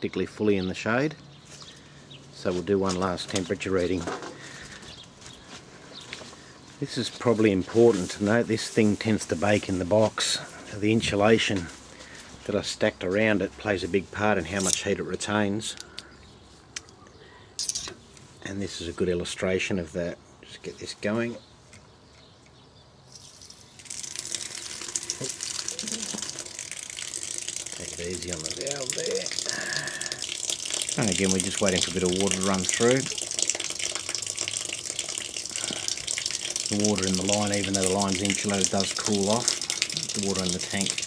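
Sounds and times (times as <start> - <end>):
faint background noise: 0.0 - 41.0
water running from valve: 23.2 - 41.0.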